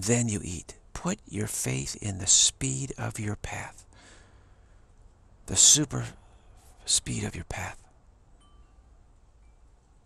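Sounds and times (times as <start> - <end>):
faint high ringing tones: 7.8 - 10.0.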